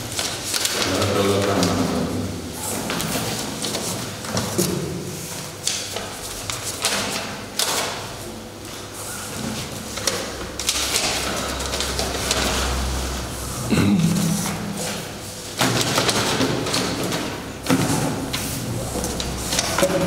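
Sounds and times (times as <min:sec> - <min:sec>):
paper rustling: 0:00.0 - 0:13.4, 0:14.2 - 0:20.0.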